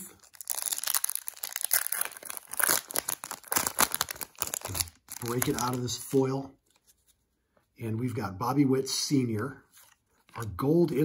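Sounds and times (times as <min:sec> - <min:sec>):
foil wrapper tearing and crinkling: 0:00.2 - 0:06.2.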